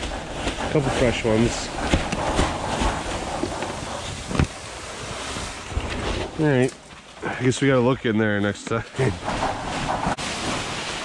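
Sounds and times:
wind noise: 0.0s - 6.4s
plastic sheeting rustling: 9.0s - 11.0s.

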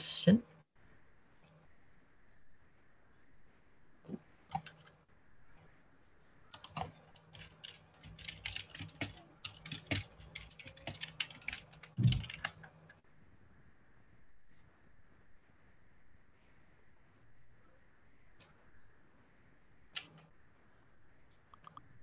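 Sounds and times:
typing on computer keyboard: 4.5s - 5.0s, 6.5s - 13.0s, 20.0s - 20.3s.

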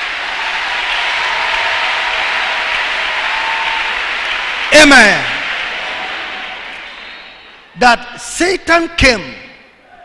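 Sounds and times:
large congregation applauding: 0.0s - 7.8s.

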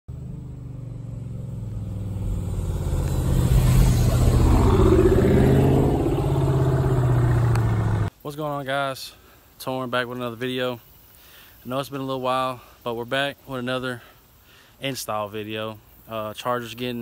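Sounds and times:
car engine running: 0.1s - 8.1s.

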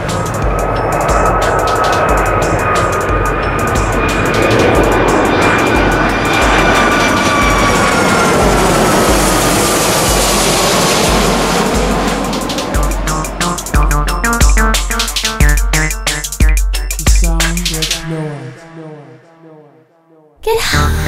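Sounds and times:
electronic music with bass beat: 0.0s - 8.6s, 11.1s - 19.4s
jet engines roaring overhead: 0.0s - 16.9s.

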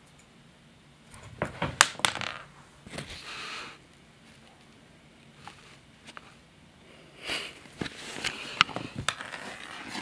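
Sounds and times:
dried fish clattering on floor: 1.4s - 3.1s.

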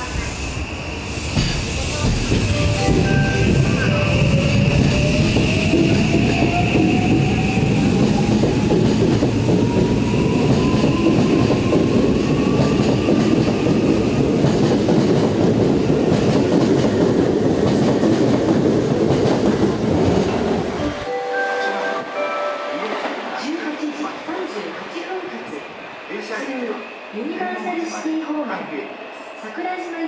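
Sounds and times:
wheels rumbling on rail: 0.0s - 21.1s.

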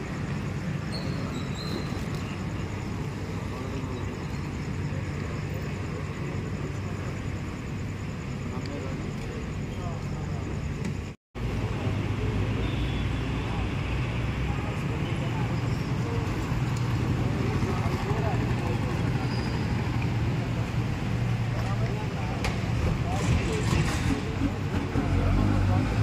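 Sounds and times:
indistinct voices talking: 0.0s - 26.0s
road traffic engine hum: 0.0s - 26.0s.

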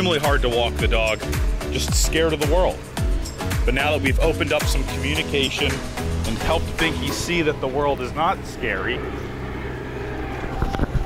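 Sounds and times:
street traffic: 0.0s - 11.0s
wind on microphone: 10.3s - 11.0s.

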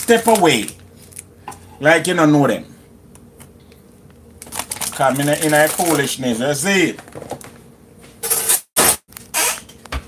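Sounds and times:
plastic wrapper crinkling: 0.0s - 1.3s, 4.0s - 6.2s.

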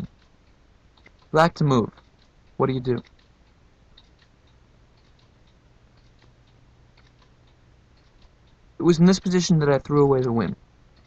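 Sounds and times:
faint small clicks: 0.0s - 8.6s
low room hum: 0.0s - 11.0s.

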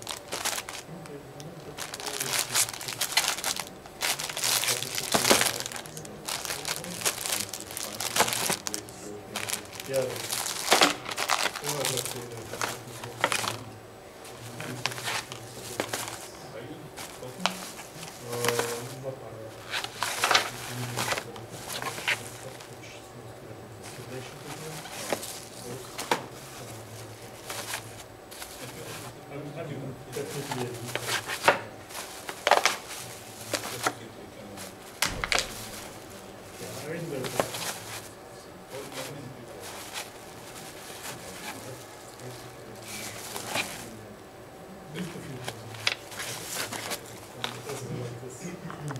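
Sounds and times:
plastic bag crinkling: 0.0s - 13.7s, 14.3s - 16.3s, 17.0s - 19.0s, 19.6s - 22.8s, 23.9s - 29.1s, 30.1s - 38.1s, 38.7s - 44.0s, 45.3s - 47.9s.

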